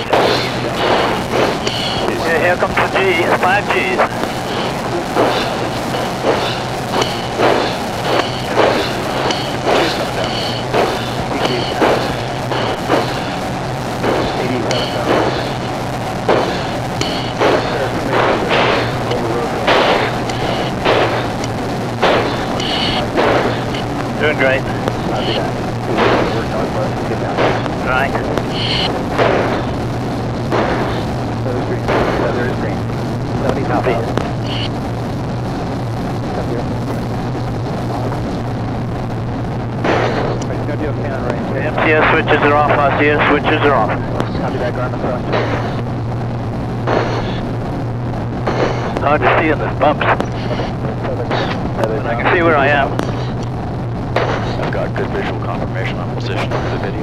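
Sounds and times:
low cabin hum: 0:00.0 - 0:57.0
heavy breathing into mask microphone: 0:00.3 - 0:02.1.

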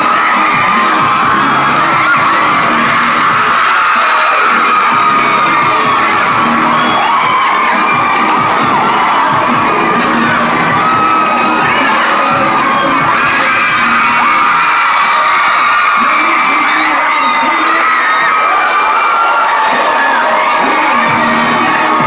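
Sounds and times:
audience cheering and shouting: 0:00.0 - 0:22.0.

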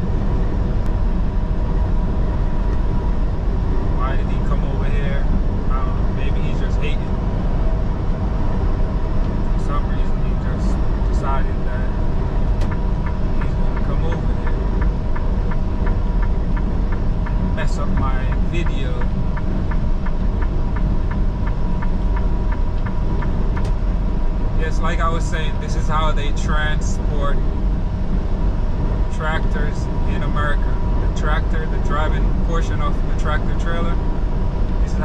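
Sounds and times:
truck engine and road noise: 0:00.0 - 0:35.0.

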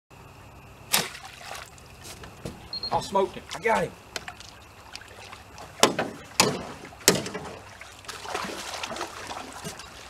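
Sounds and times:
steady low hum: 0:00.1 - 0:10.0
arrow splashing into water: 0:00.9 - 0:01.8, 0:04.2 - 0:09.8
small splashes and dripping water: 0:00.9 - 0:02.7, 0:03.5 - 0:10.0.

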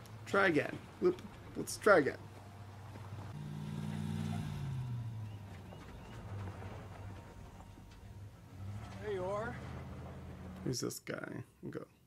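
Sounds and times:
car engine hum: 0:02.2 - 0:10.8.

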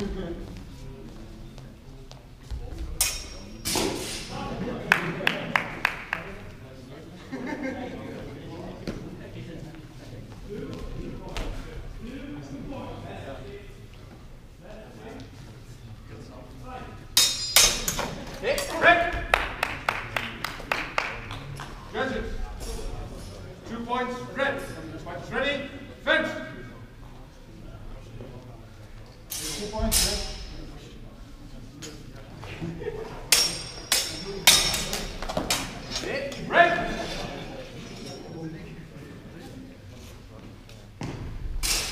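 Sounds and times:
swords clashing: 0:03.0 - 0:04.4, 0:17.2 - 0:18.7, 0:33.3 - 0:37.2, 0:41.6 - 0:41.9.

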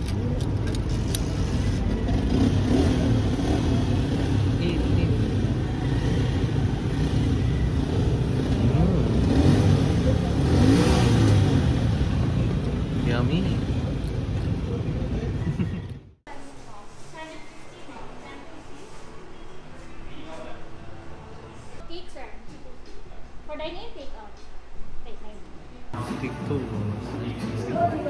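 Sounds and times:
vehicle engines passing by: 0:00.0 - 0:16.2.

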